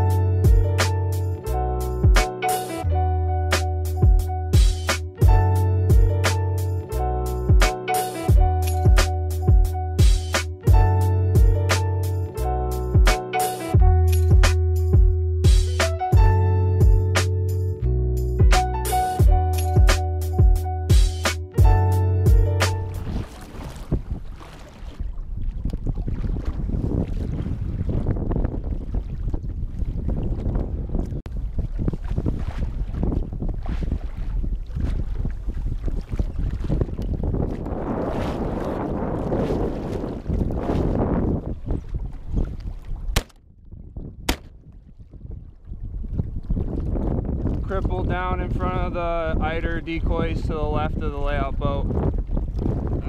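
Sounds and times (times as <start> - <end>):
water lapping against hull: 22.6 - 53.0
wind buffeting microphone: 22.9 - 53.0.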